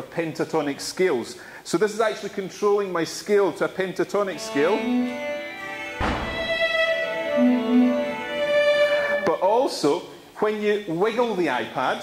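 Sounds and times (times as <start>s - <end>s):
pentatonic instrument notes: 4.3s - 9.4s.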